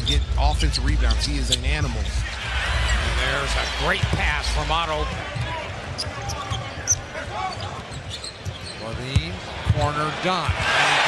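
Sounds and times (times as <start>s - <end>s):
sneaker squeaks: 5.4s - 9.3s.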